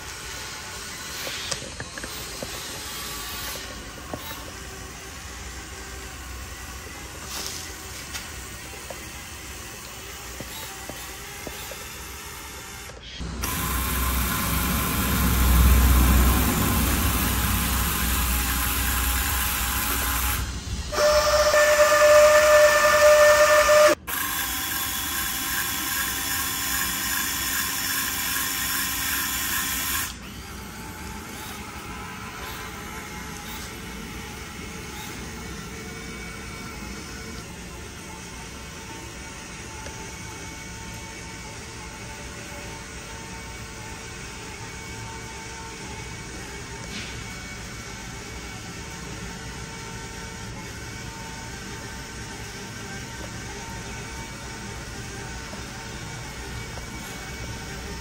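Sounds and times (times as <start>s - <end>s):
small electric motor whining: 0.0s - 58.0s.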